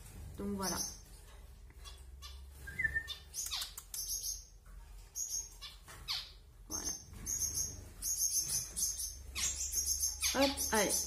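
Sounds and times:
finches chirping: 0:00.4 - 0:01.1, 0:01.8 - 0:11.0.

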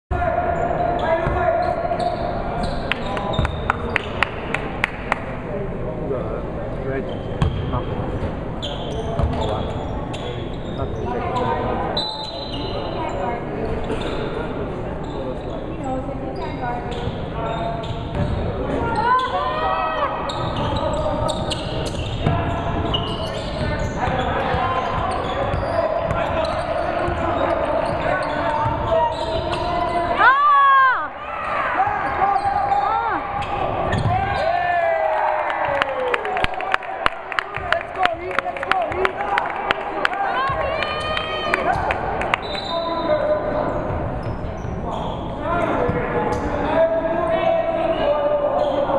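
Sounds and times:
players' voices: 0:00.1 - 0:48.9.

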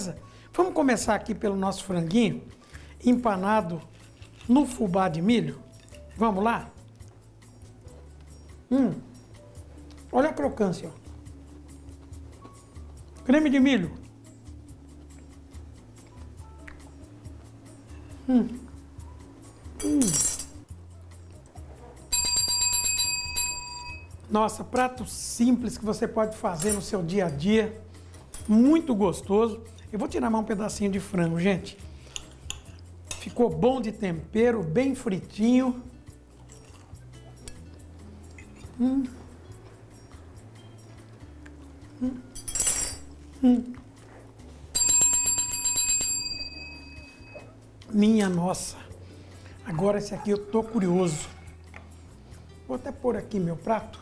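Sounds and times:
bicycle bell ringing: 0:22.1 - 0:24.2, 0:44.7 - 0:47.5.

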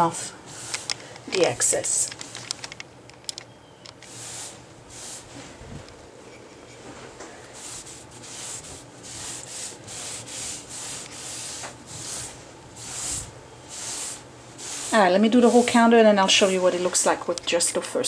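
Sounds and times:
cloth rag swishing over wood: 0:04.1 - 0:05.6, 0:07.5 - 0:17.2.

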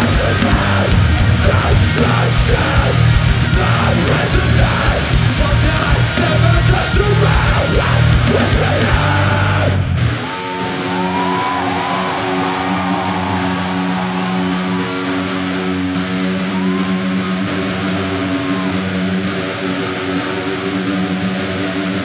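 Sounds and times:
guitar feedback tones: 0:00.0 - 0:22.0.

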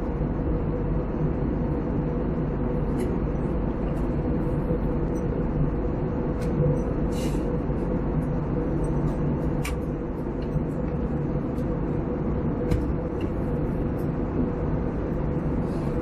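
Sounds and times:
airliner engine drone: 0:00.0 - 0:16.0
constant hum: 0:00.0 - 0:16.0.

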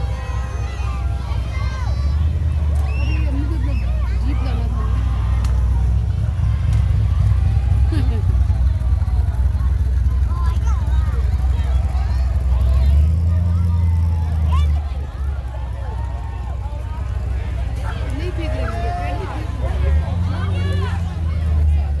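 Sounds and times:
crowd chatter: 0:00.0 - 0:22.0
engine rumble: 0:00.0 - 0:22.0
pickup truck engine: 0:00.0 - 0:22.0.

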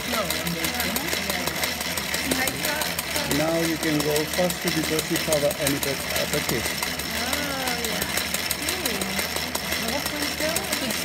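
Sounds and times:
sewing machine clatter: 0:00.0 - 0:11.0.

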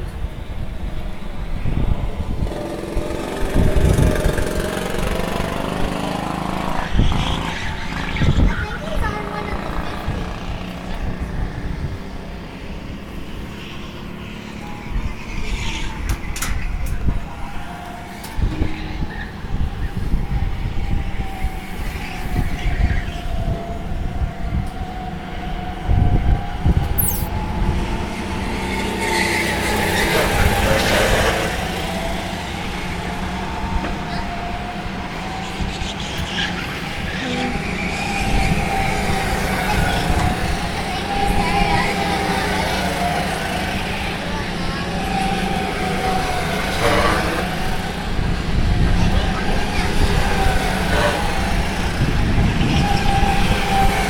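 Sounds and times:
go-kart engines passing: 0:00.0 - 0:54.0.

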